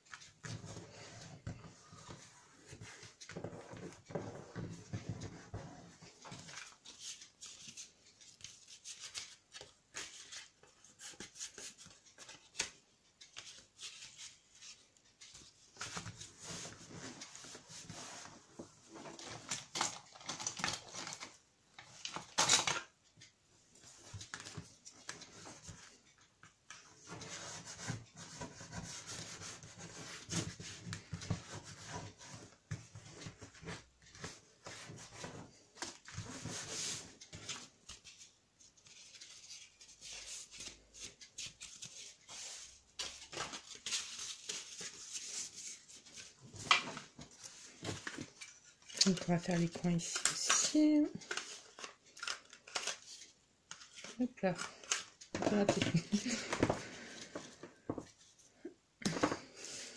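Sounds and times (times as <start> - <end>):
paper rustling and rubbing: 0.0 - 19.6, 27.0 - 50.2.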